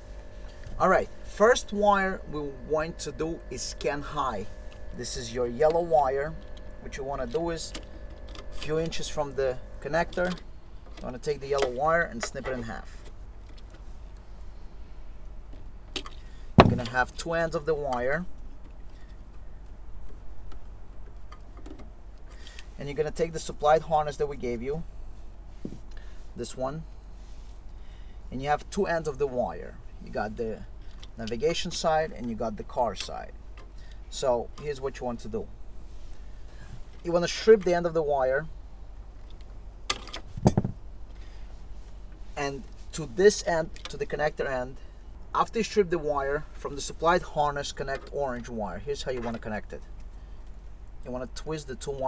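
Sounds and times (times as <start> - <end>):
low steady hum: 0.0 - 52.0
knocks and rustling: 16.0 - 17.0, 39.9 - 40.8.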